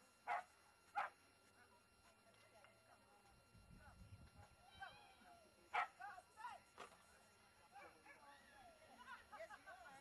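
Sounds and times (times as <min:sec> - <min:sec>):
dog barking: 0:00.3 - 0:01.2, 0:05.7 - 0:06.0.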